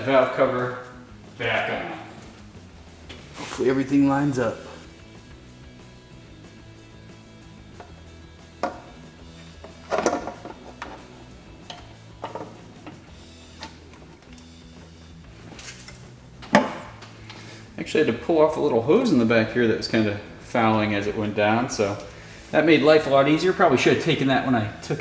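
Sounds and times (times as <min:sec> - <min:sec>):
quiet background music: 0:00.0 - 0:25.0
metal valve cover knocking: 0:08.6 - 0:09.0.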